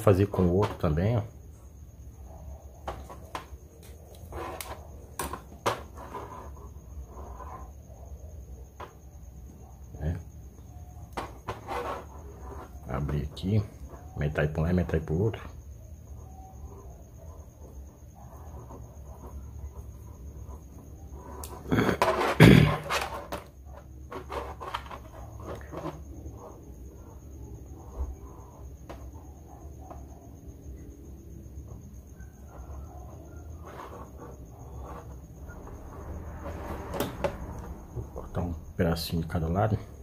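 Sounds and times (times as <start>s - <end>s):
wire scraping and handling: 20.5s - 27.1s.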